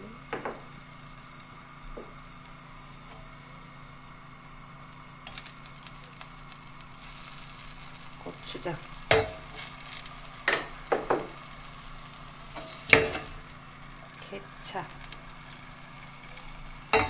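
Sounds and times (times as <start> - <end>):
steady low hum: 0.0 - 17.0
knock on frying pan: 0.3 - 0.7, 10.5 - 11.4.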